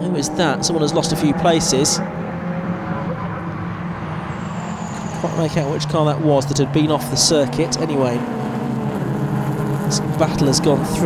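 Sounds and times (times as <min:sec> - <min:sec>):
distant race car engines droning: 0:00.0 - 0:11.0.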